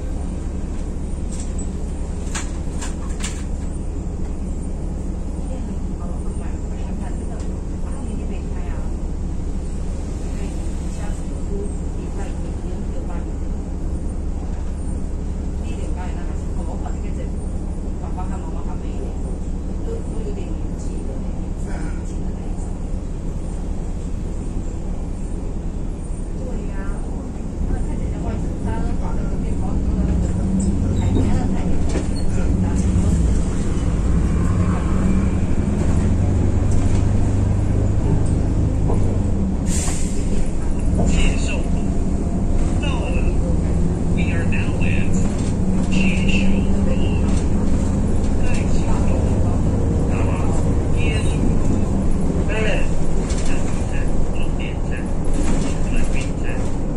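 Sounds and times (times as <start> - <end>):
bus engine drone: 0.0 - 56.9.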